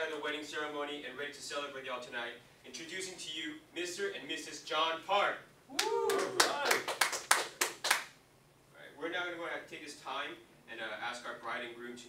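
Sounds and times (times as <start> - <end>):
sharp hand claps: 5.7 - 8.2.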